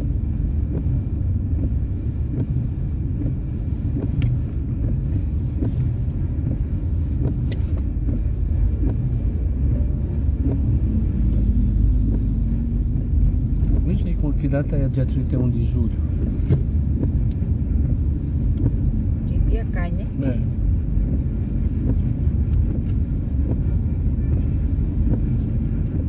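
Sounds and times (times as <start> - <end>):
car engine and tyre noise: 0.0 - 26.0.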